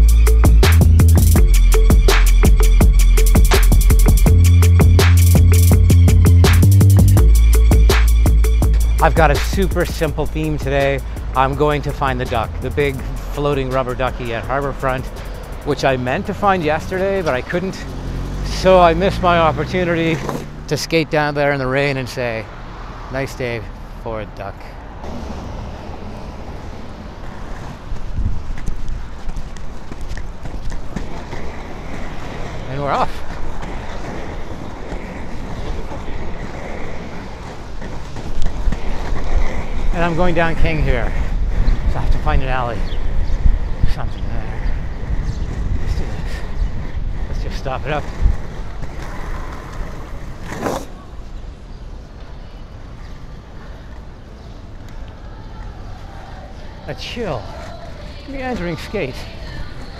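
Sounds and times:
street traffic: 0:00.0 - 0:59.9
skate wheels rolling on asphalt: 0:00.2 - 0:59.9
wind on microphone: 0:25.0 - 0:32.1, 0:33.2 - 0:50.5.

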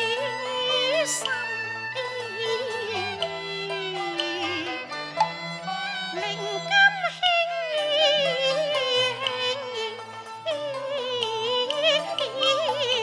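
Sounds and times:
instrumental accompaniment: 0:00.0 - 0:13.0
woman singing opera with vibrato: 0:00.0 - 0:13.0.

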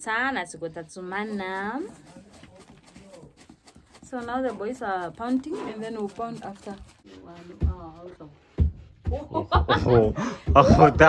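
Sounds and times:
pestles pounding in a mortar: 0:01.8 - 0:09.3, 0:10.4 - 0:11.0.

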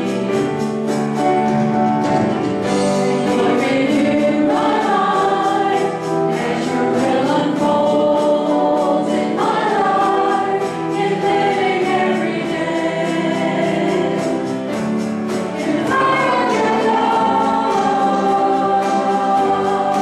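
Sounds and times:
voices singing together: 0:00.0 - 0:00.9, 0:02.7 - 0:20.0
drums: 0:00.0 - 0:20.0
piano: 0:00.0 - 0:20.0.

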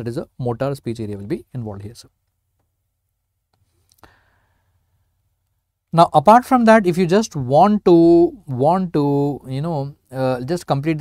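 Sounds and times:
man speaking: 0:00.0 - 0:02.1, 0:05.9 - 0:11.0
short faint exhale: 0:03.7 - 0:04.8.

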